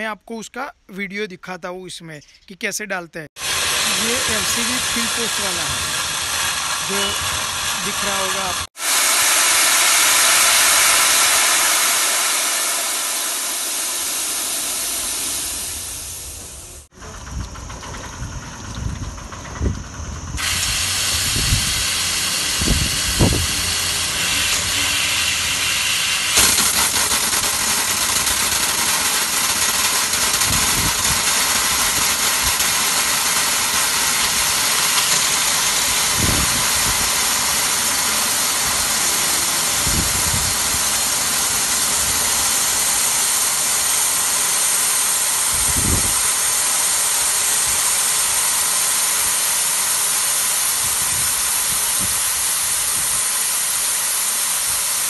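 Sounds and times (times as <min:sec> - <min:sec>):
gas hissing through tubing: 0:03.4 - 0:17.0, 0:20.4 - 0:55.0.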